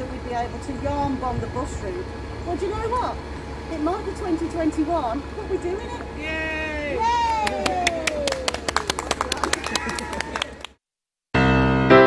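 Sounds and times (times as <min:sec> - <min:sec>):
voices cheering: 0:06.1 - 0:10.8
people clapping: 0:07.1 - 0:10.8.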